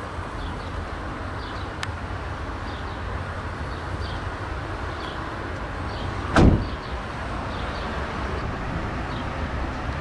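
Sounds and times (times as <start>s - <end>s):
car door shutting with thud: 6.3s - 6.8s.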